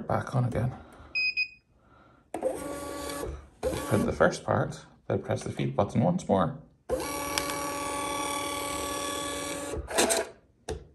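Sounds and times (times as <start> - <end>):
printer motor whine: 6.9 - 10.3.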